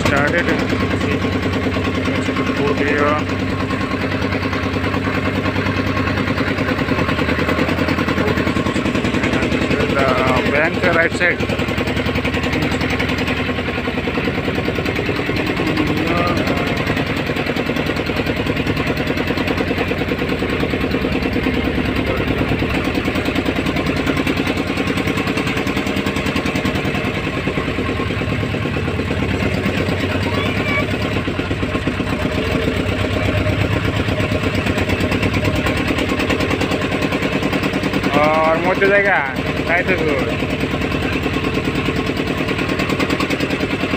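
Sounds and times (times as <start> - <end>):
motorboat engine chugging: 0.0 - 43.9.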